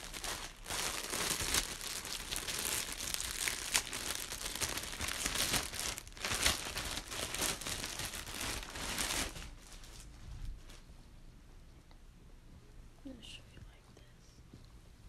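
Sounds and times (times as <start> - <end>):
plastic bag crinkling: 0.0 - 10.8.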